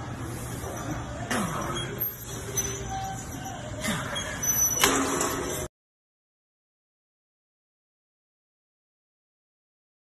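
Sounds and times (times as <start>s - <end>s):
gym background hum: 0.0s - 5.7s.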